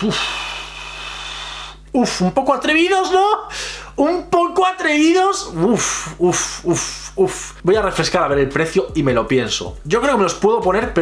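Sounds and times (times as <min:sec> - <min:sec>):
man gasping: 0:03.5 - 0:04.0.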